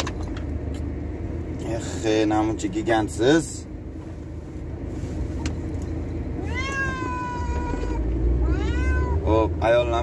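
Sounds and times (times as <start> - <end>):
car low rumble: 0.0 - 10.0
cat meowing: 6.4 - 9.3.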